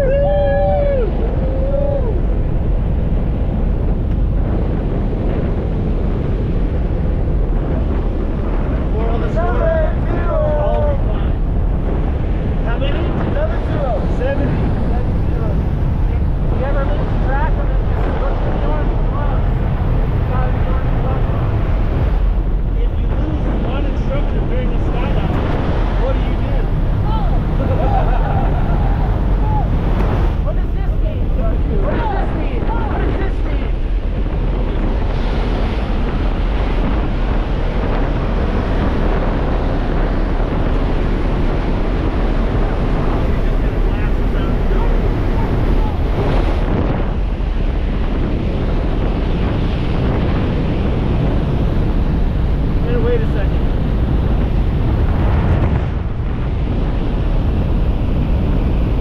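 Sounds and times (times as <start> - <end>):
plane engine noise: 0.0 - 59.0
rush of wind: 0.0 - 59.0.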